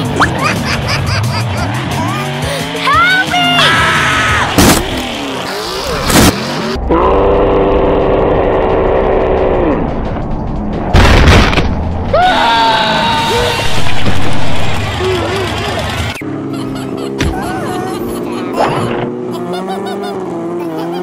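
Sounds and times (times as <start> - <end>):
music: 0.0 - 4.6, 6.8 - 16.1
truck engines revving: 0.0 - 11.0, 11.6 - 21.0
loud crash: 10.9 - 11.9.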